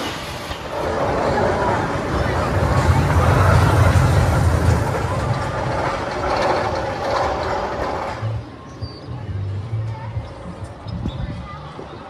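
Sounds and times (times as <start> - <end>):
roller coaster rumbling on track: 0.0 - 12.0.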